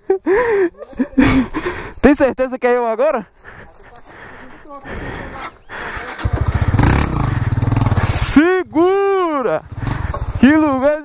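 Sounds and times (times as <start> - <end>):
small motorcycle engine revving: 5.9 - 8.4, 9.6 - 10.6.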